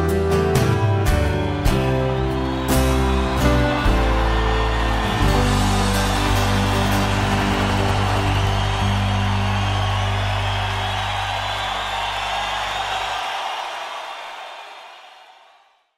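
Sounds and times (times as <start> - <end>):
audience cheering: 0.0 - 15.9.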